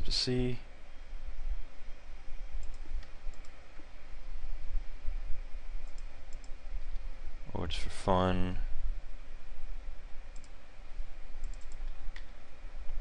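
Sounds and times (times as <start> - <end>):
computer mouse clicks: 2.6 - 3.6, 5.8 - 7.0, 10.3 - 10.6, 11.4 - 12.3.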